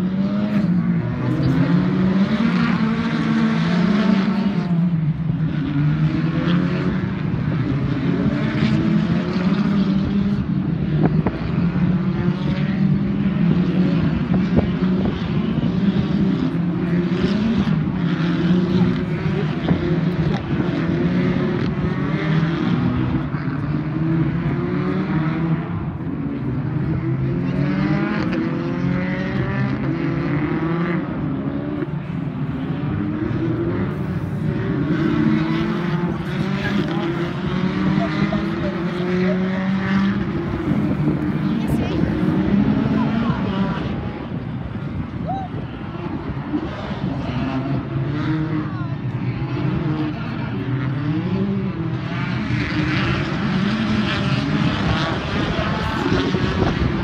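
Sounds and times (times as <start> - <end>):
race car engines at full throttle: 0.0 - 57.0.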